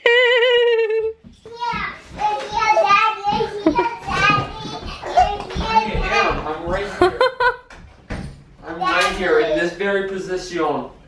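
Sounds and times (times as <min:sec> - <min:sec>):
girl calling out and chattering: 0:03.3 - 0:05.4.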